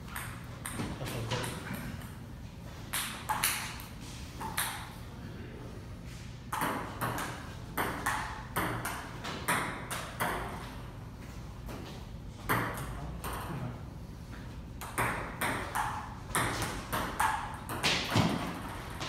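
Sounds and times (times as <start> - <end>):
table tennis ball knocking: 6.5 - 10.6, 12.4 - 13.5, 14.8 - 19.0.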